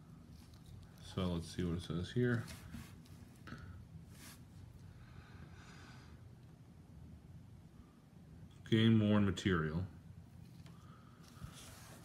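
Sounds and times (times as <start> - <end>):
soft rustle of card handling: 0.0 - 5.0, 10.3 - 12.0
low room hum: 0.0 - 12.0.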